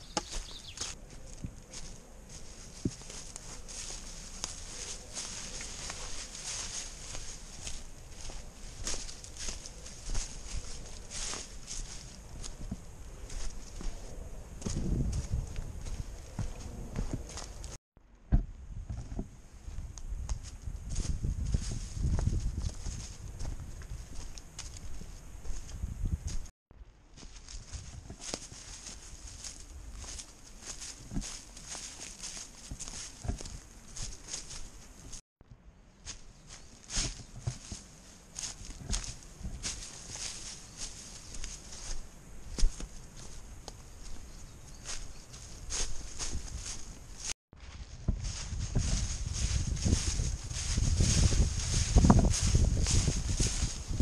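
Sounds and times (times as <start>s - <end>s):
footsteps crunching on dry leaves: 0.0s - 17.8s, 20.4s - 25.7s, 27.2s - 35.2s, 36.0s - 54.0s
low rumbling microphone noise: 46.2s - 54.0s.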